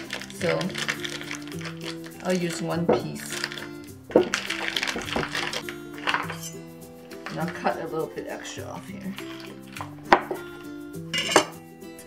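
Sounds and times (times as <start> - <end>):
background music with sustained notes: 0.0 - 12.0.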